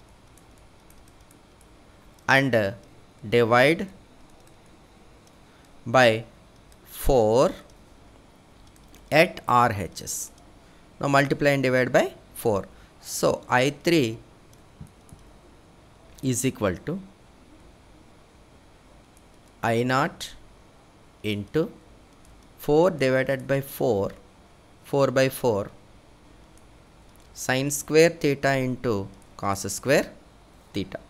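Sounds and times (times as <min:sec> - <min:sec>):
low room hiss: 0:00.0 - 0:31.0
man speaking: 0:02.3 - 0:04.0, 0:05.9 - 0:06.3, 0:06.9 - 0:07.7, 0:09.1 - 0:10.3, 0:11.0 - 0:14.2, 0:16.2 - 0:17.1, 0:19.6 - 0:20.4, 0:21.2 - 0:21.8, 0:22.6 - 0:24.2, 0:24.9 - 0:25.8, 0:27.4 - 0:31.0.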